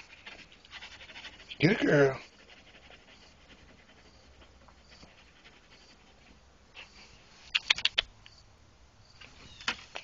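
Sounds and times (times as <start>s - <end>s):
person speaking: 1.5s - 2.4s.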